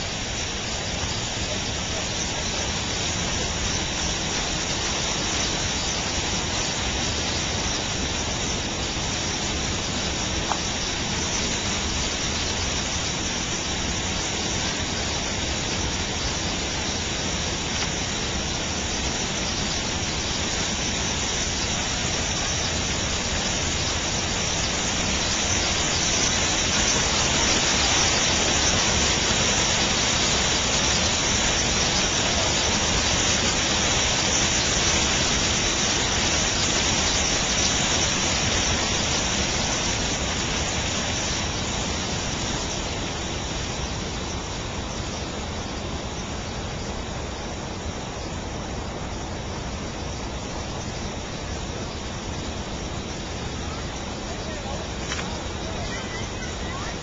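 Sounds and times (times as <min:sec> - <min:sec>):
water spilling over concrete: 0:00.0 - 0:43.6.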